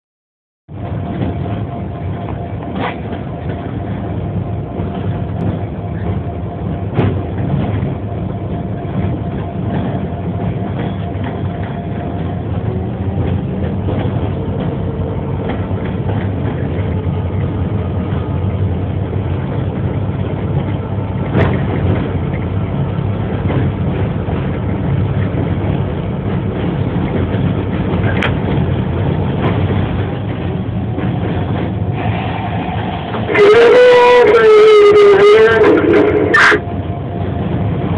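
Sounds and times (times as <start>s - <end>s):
locomotive rumbling on rails: 0.7s - 37.9s
loud sustained horn tone: 33.2s - 36.7s.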